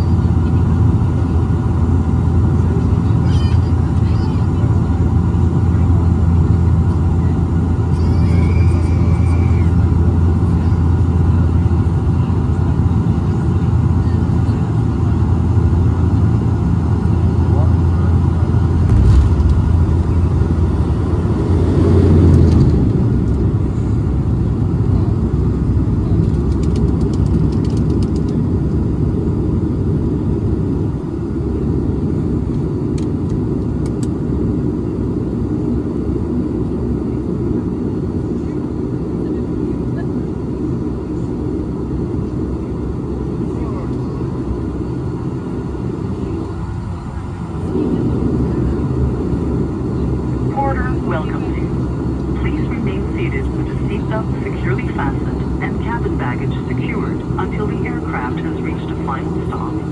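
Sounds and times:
turboprop engine drone: 0.0s - 59.9s.

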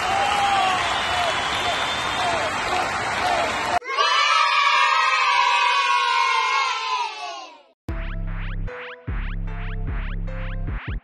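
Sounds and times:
applause: 0.0s - 3.8s
crowd cheering: 0.0s - 7.6s.

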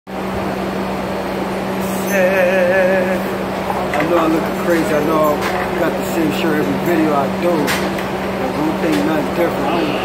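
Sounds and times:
subway car hum and rush: 0.1s - 10.0s.

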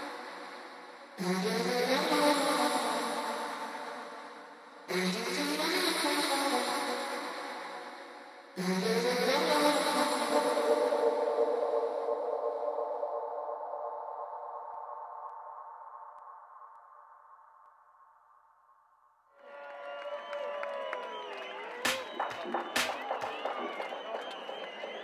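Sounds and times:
crowd cheering and whistling: 19.4s - 25.0s.

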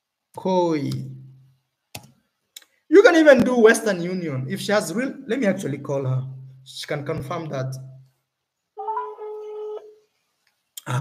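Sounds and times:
phone outgoing call tone: 8.8s - 9.8s.

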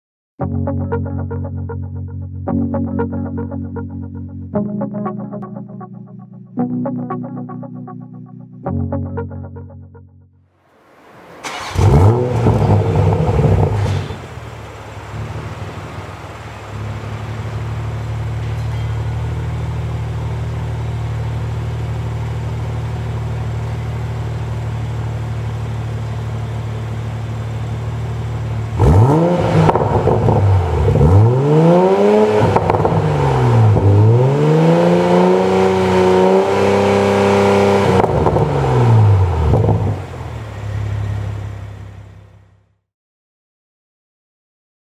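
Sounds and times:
car engine revving and idling: 11.1s - 42.5s.

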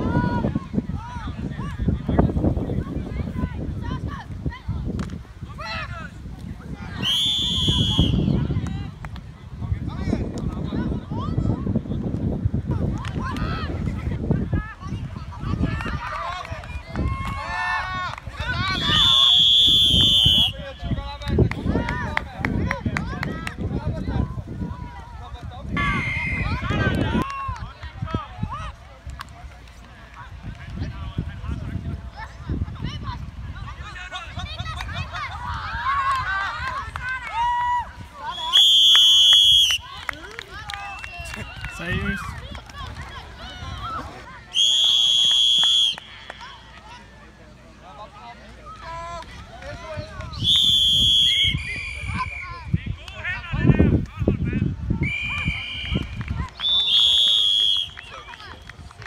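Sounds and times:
wind rumble on microphone: 0.0s - 38.2s, 49.3s - 56.8s
referee's whistle blasts: 7.0s - 8.4s, 18.6s - 20.9s, 25.8s - 26.9s, 38.2s - 39.9s, 44.5s - 46.2s, 50.4s - 52.6s, 55.0s - 58.3s.

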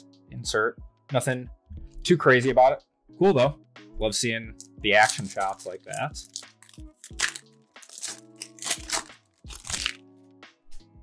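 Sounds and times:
background music: 0.0s - 11.0s
plastic wrapper crinkling and tearing: 5.0s - 10.0s.

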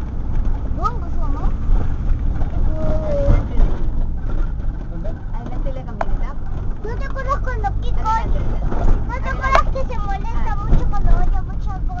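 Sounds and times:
car engine rumble: 0.0s - 12.0s
road noise inside car: 0.0s - 12.0s
child talking: 0.8s - 1.5s, 2.6s - 3.6s, 6.8s - 12.0s.

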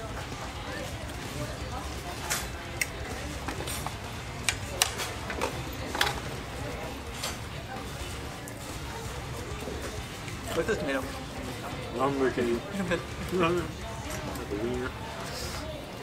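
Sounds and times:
murmur of background voices: 0.0s - 16.0s.

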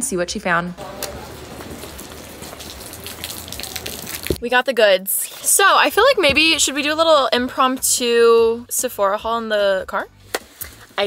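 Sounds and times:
rain on a glossy bag: 0.8s - 4.4s
rain on wet pavement: 0.8s - 4.4s.

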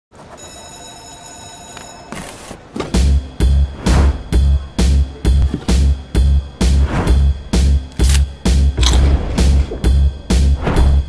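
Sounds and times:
telephone ringing: 0.2s - 2.6s.

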